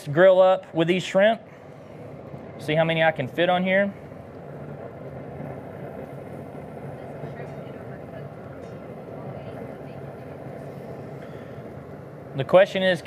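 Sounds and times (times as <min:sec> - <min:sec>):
grill humming and hissing: 0:00.0 - 0:13.0.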